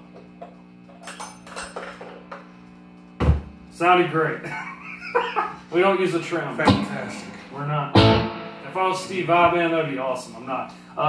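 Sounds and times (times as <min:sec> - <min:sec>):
electric guitar amplifier hum: 0:00.0 - 0:01.1, 0:01.9 - 0:11.0.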